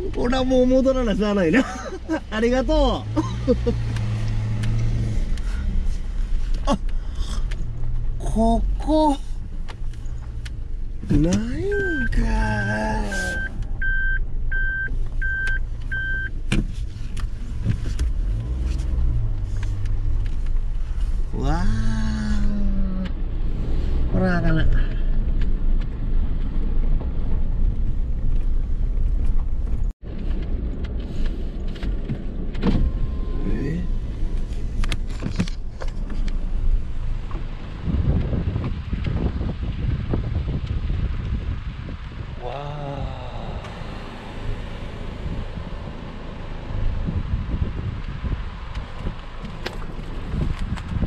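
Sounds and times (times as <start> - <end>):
car engine and tyres on gravel: 0.0 - 51.0
outdoor noise: 0.0 - 51.0.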